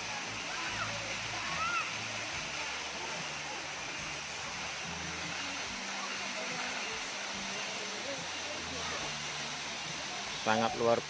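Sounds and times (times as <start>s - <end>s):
waterfall onto rocks: 0.0s - 11.0s.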